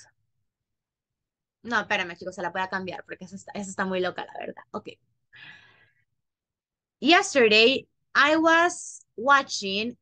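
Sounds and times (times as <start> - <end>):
woman's soft breath: 5.3 - 6.1.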